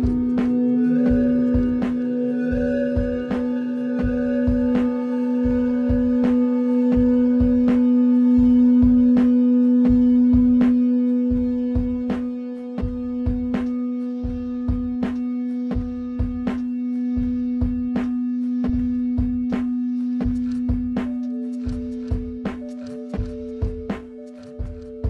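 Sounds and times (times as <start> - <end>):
low electronic drone: 0.0 - 25.0
sustained pad tones: 0.0 - 25.0.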